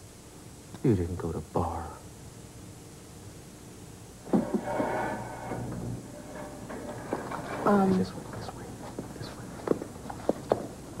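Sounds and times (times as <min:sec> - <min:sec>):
footsteps on hard floor: 0:08.8 - 0:10.8.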